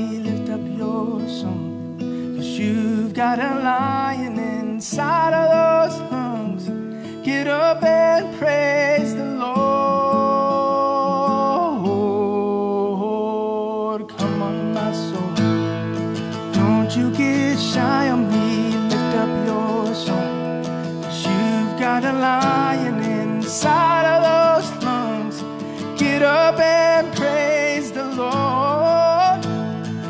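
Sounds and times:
man singing: 0:00.0 - 0:30.0
strummed acoustic guitar: 0:00.0 - 0:30.0.

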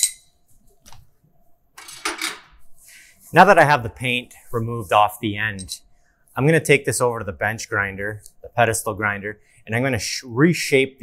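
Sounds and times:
chisel clinking on anvil: 0:00.0 - 0:00.3.

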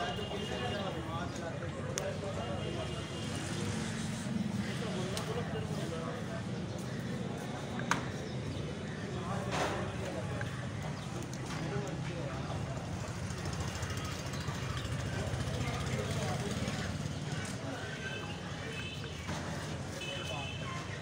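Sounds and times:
people talking: 0:00.0 - 0:21.0
traffic rumble: 0:00.0 - 0:21.0.

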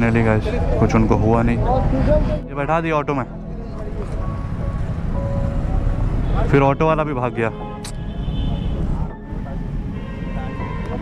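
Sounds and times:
roadside traffic rumble: 0:00.0 - 0:11.0.

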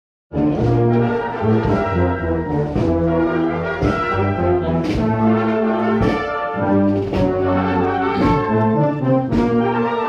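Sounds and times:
brass band playing: 0:00.3 - 0:10.0.

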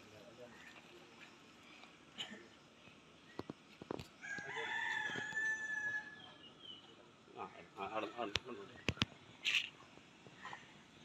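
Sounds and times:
rooster crowing: 0:04.2 - 0:06.4.

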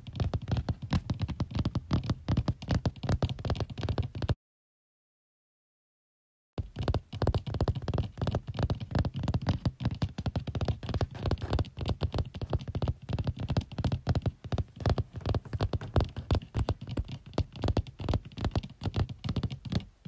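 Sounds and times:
rapid tapping and scratching: 0:00.0 - 0:04.4, 0:06.6 - 0:20.0.

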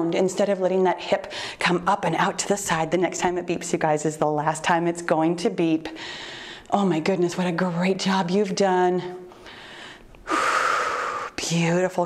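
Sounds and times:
faint breathing: 0:01.2 - 0:01.6, 0:05.9 - 0:06.7, 0:09.3 - 0:11.4
woman's forceful breath: 0:01.3 - 0:01.6, 0:06.0 - 0:06.6, 0:09.4 - 0:11.4.

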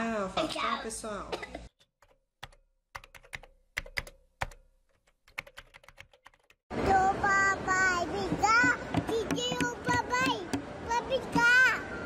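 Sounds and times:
keyboard typing clicks: 0:02.0 - 0:06.6
child singing: 0:06.8 - 0:11.8.

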